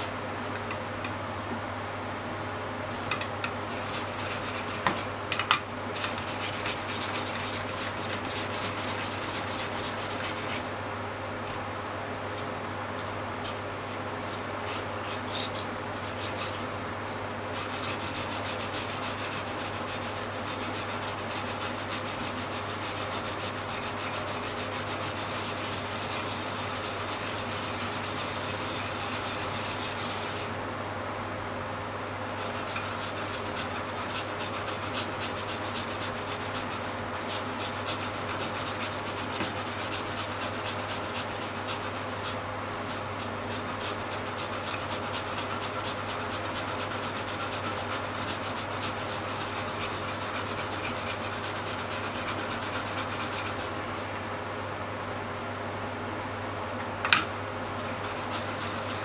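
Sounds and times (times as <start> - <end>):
yam rasping on grater: 3.5 - 5.1, 5.9 - 10.8, 13.1 - 30.6, 32.0 - 53.8, 57.6 - 59.0.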